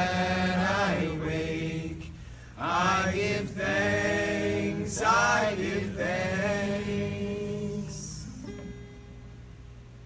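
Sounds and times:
voices singing a chant: 0:00.0 - 0:08.4.

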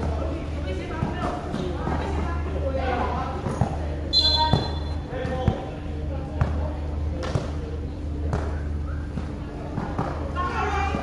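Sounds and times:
steady low hum: 0:00.0 - 0:11.0
players calling out: 0:04.0 - 0:05.6
basketball bouncing on court: 0:04.4 - 0:06.6.

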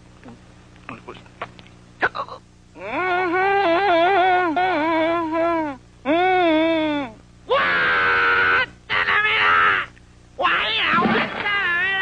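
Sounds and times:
cartoon voice crying and wailing: 0:02.0 - 0:12.0.

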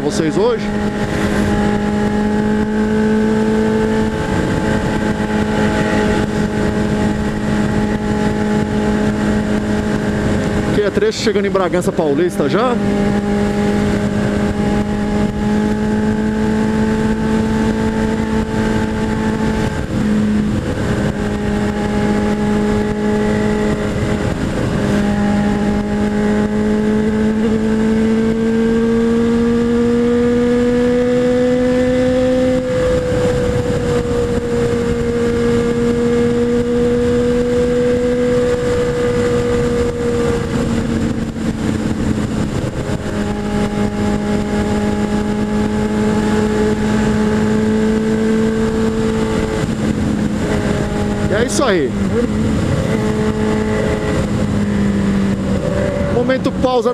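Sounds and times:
motorcycle engine cruising: 0:00.0 - 0:56.9
wind rush: 0:00.0 - 0:56.9.

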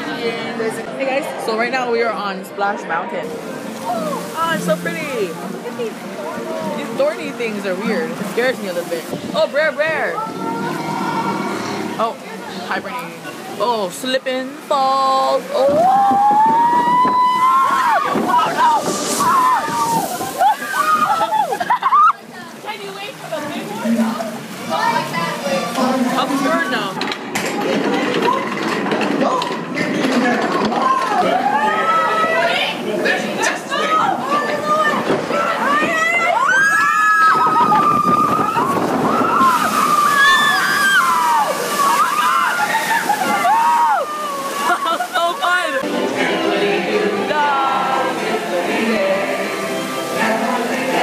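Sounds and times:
water splashing and sloshing: 0:03.1 - 0:51.0
riders crying out: 0:10.2 - 0:12.0.

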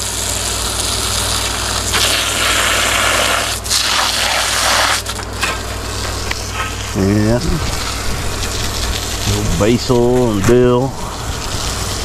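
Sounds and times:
air conditioner hum: 0:00.0 - 0:12.0
water spraying from hose nozzle: 0:00.0 - 0:12.0.

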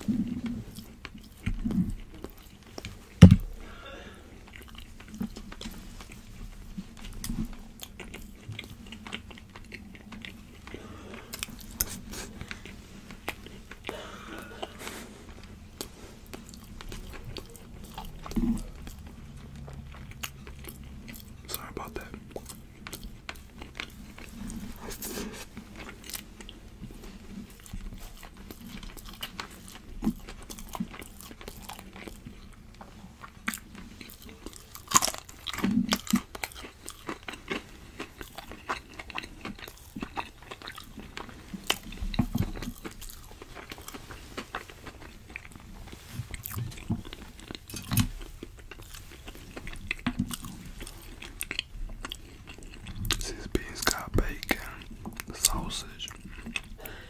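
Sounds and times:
chewing and biting food: 0:00.0 - 0:57.0
food crunching: 0:00.0 - 0:57.0.

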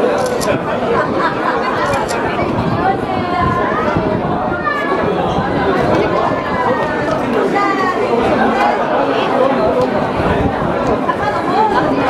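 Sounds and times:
hubbub of overlapping voices: 0:00.0 - 0:12.0.

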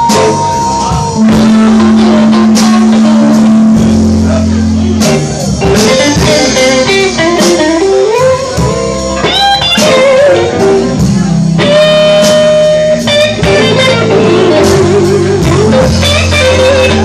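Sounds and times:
blues band playing: 0:00.0 - 0:17.0
electric guitar lead: 0:00.0 - 0:17.0.

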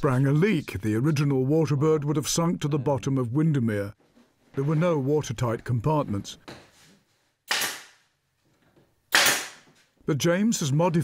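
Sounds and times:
nail gun shot into plywood: 0:07.5 - 0:08.0, 0:09.1 - 0:09.7.

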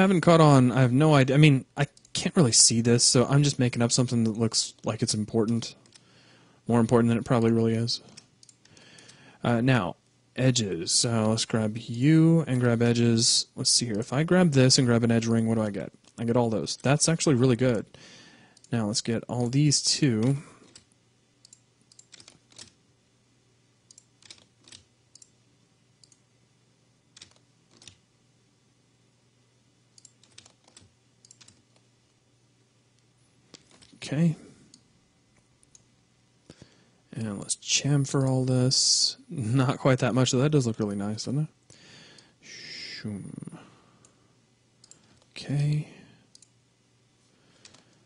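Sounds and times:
faint low hum: 0:00.0 - 0:48.0
mouse and keyboard clicks: 0:20.2 - 0:22.8, 0:27.1 - 0:28.0, 0:30.0 - 0:31.8.

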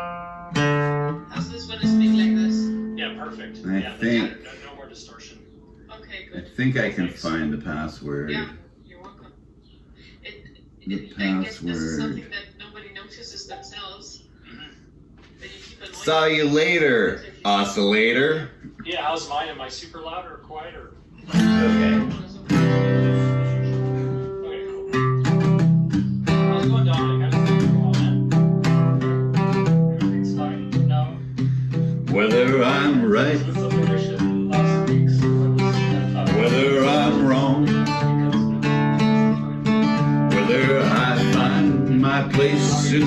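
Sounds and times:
acoustic guitar strumming: 0:00.0 - 0:04.6, 0:21.2 - 0:43.0
man singing: 0:21.4 - 0:22.2, 0:32.0 - 0:38.6, 0:40.3 - 0:43.0.

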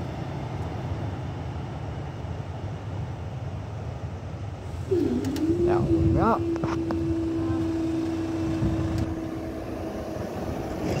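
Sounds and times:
low background rumble: 0:04.4 - 0:11.0
barrier power unit humming: 0:04.7 - 0:11.0.

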